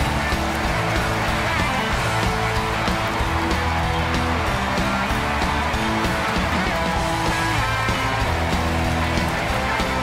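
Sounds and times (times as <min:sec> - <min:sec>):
house band walk-on music: 0:00.0 - 0:10.0.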